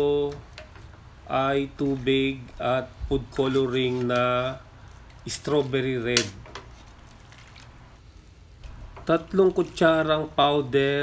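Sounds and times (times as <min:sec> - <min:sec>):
liquid sloshing and dripping: 0:06.4 - 0:08.0.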